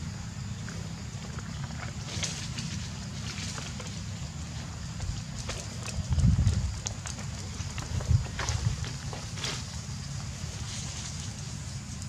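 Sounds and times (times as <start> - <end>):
wind rumble on microphone: 0.5 - 12.0.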